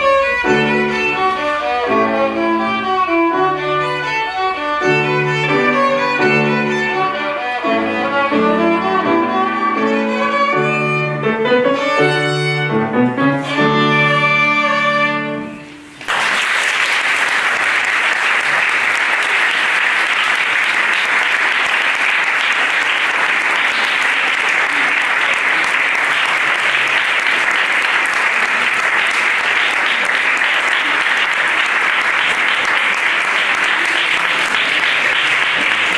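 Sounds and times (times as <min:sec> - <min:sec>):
audience applauding: 0:15.9 - 0:35.9.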